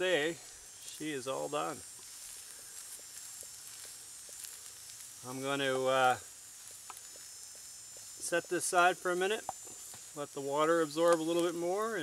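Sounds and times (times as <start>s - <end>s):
faint high hiss: 0.0s - 12.0s.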